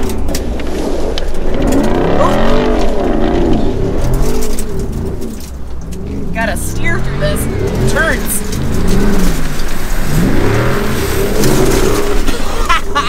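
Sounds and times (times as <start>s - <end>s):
engine revving: 0.0s - 13.0s
tyres on loose gravel: 0.0s - 13.0s.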